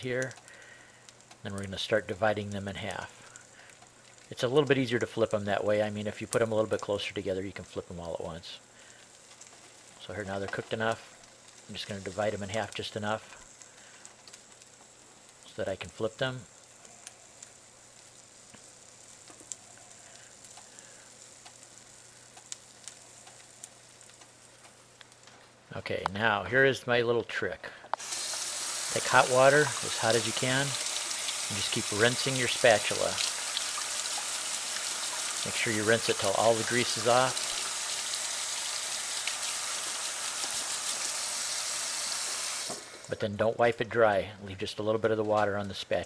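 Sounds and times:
eggs sizzling in a skillet: 0.0 - 25.5, 27.9 - 46.0
small pops and crackles: 0.0 - 26.3, 27.8 - 41.3, 42.2 - 44.0
water running into steel sink: 28.0 - 43.1.

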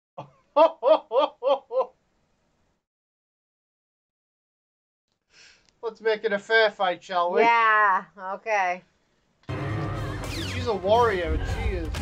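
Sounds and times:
woman laughing: 0.6 - 1.9.

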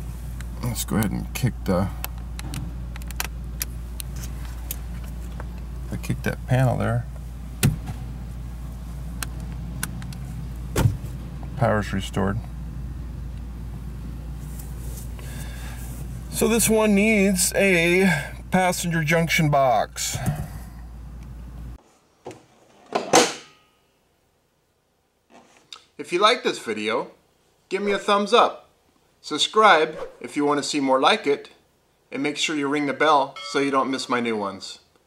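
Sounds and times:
steady low hum: 0.0 - 21.8
thump on panel: 7.6 - 8.0, 10.8 - 11.1.

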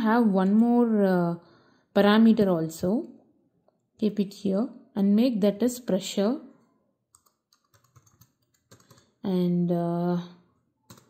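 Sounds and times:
computer keyboard typing: 7.1 - 9.2.

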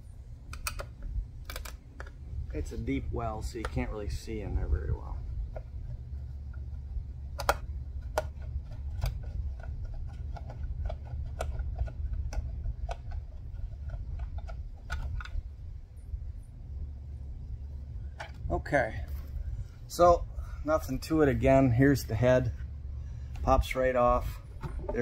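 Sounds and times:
low rumble: 0.0 - 25.0.

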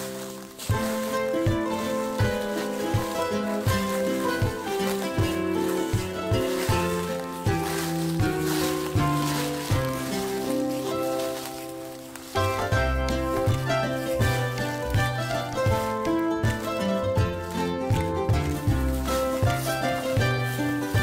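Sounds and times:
instrumental background music: 0.0 - 21.0.

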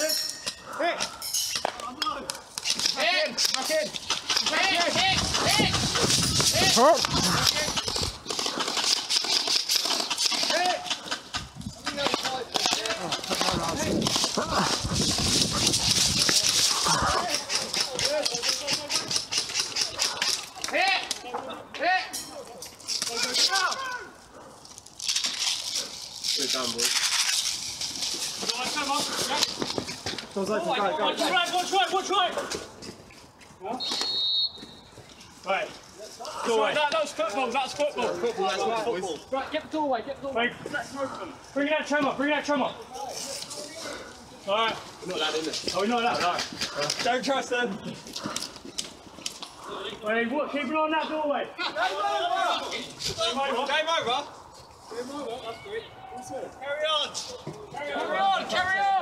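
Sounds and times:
voices calling out: 0.0 - 24.9
sharp clicks and rattles: 1.4 - 21.2.

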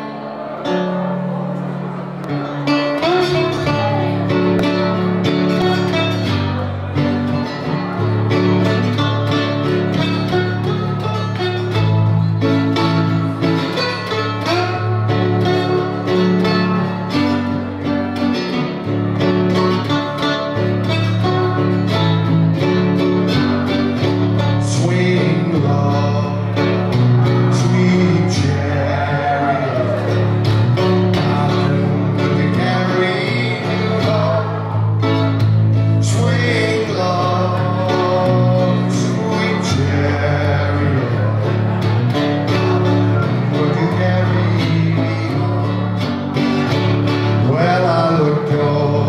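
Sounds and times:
resonator guitar playing blues: 0.0 - 49.0.

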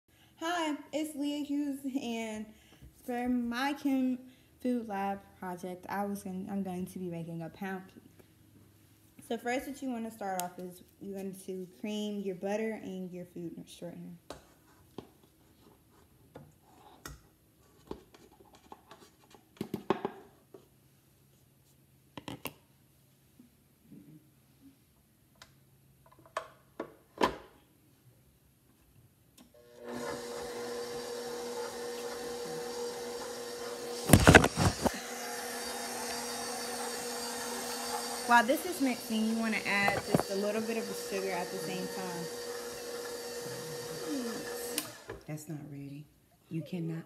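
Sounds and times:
stand mixer humming: 29.6 - 45.2.

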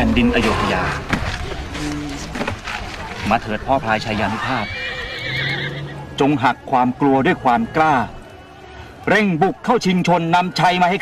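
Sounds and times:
horse whinnying: 4.2 - 6.1.

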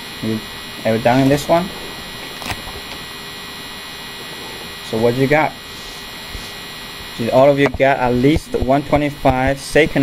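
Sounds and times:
background hiss: 0.0 - 9.9
electrical hum: 0.0 - 10.0.

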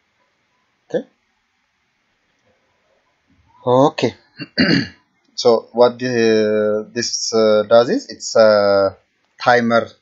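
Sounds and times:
man saying okay: 3.7 - 9.9.

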